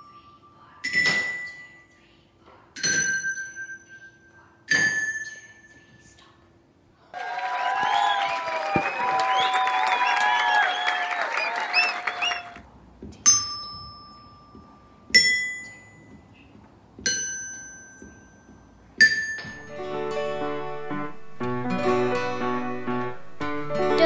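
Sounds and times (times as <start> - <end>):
clapping: 7.2 - 12.6.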